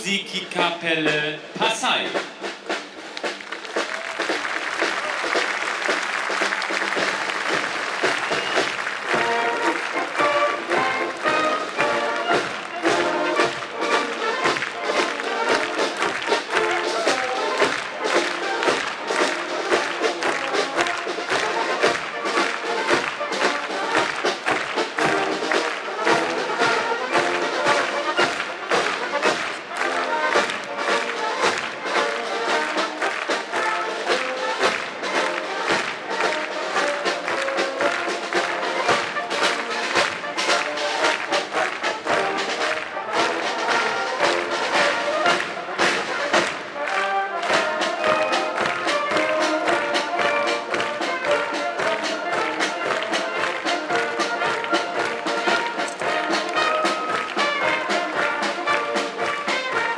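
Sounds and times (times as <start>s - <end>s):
brass marching band playing: 0.0s - 59.9s
steady drum beat: 0.0s - 59.9s.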